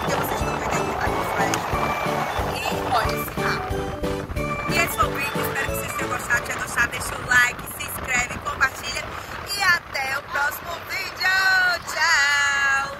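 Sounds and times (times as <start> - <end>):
wind noise on microphone: 0.0 - 12.9.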